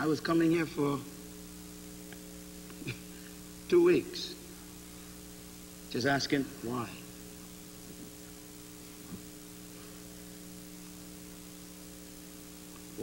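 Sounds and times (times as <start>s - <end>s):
electrical mains hum: 0.0s - 13.0s
tape hiss: 0.0s - 13.0s.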